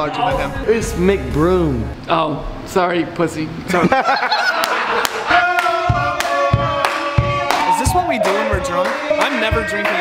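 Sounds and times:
music with held notes and drum hits: 0:00.0 - 0:02.0, 0:05.8 - 0:10.0
laughter: 0:03.7 - 0:05.3.

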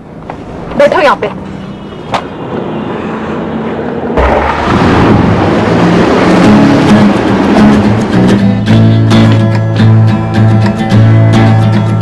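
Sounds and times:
bus interior rumble: 0:00.0 - 0:12.0
loud noise: 0:04.2 - 0:09.2
background music: 0:06.0 - 0:12.0.

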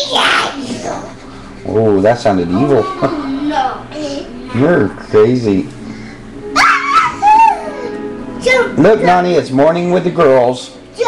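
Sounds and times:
high-pitched squealing cry: 0:06.5 - 0:07.9.

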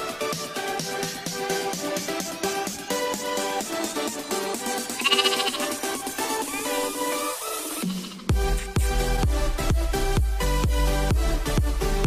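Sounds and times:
upbeat electronic dance music: 0:00.0 - 0:12.0
lamb bleating: 0:04.9 - 0:05.8.

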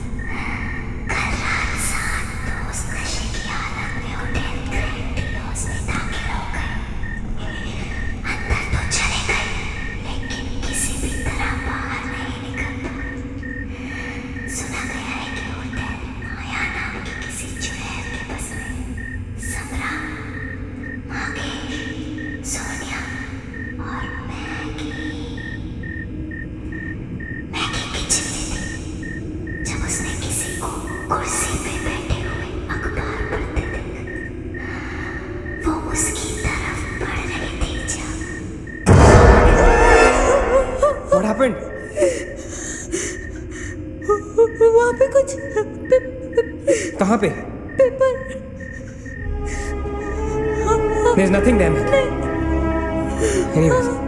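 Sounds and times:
low rumbling drone: 0:38.5 - 0:46.7.

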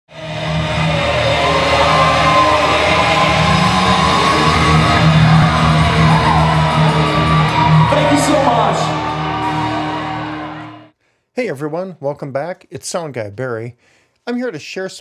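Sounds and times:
crowd shouting: 0:00.1 - 0:10.9
live rock band playing: 0:00.6 - 0:10.9.

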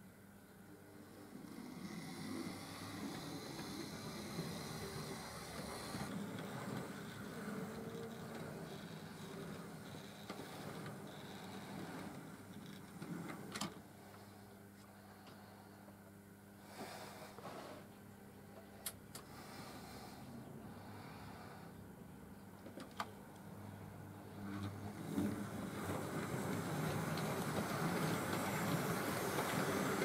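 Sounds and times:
model train rumbling on track: 0:01.2 - 0:13.7, 0:24.2 - 0:30.0.

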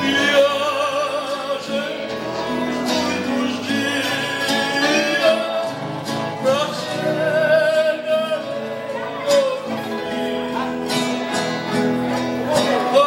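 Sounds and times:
acoustic guitar strummed and plucked: 0:00.0 - 0:13.0
man singing with vibrato: 0:00.0 - 0:13.0.

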